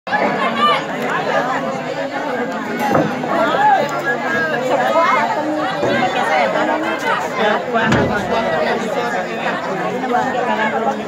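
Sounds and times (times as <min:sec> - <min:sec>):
people talking over one another: 0:00.1 - 0:11.0.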